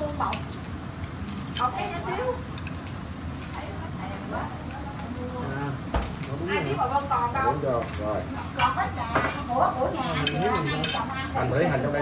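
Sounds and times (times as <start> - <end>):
utensils clicking against dishes: 7.4 - 11.1.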